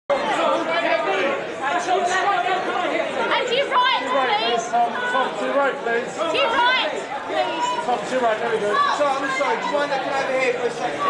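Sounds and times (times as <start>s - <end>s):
chatter of people talking: 0.1s - 11.0s.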